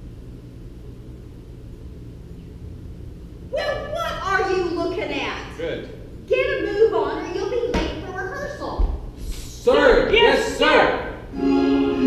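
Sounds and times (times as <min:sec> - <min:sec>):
low hum of room noise: 0:00.0 - 0:12.0.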